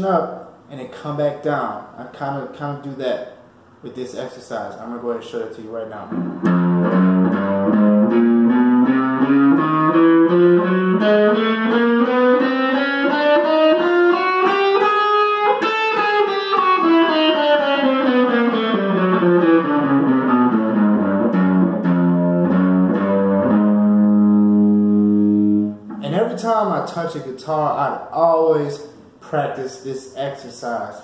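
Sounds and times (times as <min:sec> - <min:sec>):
electric guitar picked notes: 0:06.1 - 0:26.4.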